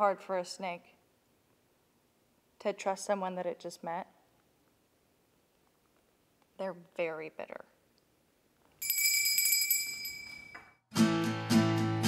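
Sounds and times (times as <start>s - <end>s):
small bell ringing: 8.8s - 10.8s.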